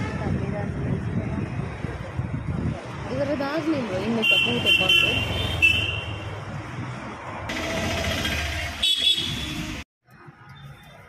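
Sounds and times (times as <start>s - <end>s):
busy street traffic: 0.0s - 11.0s
vehicle horn honk: 8.8s - 9.8s.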